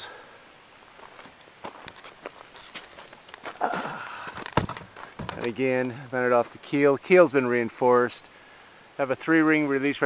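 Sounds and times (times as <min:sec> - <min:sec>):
footsteps: 0:01.0 - 0:06.8.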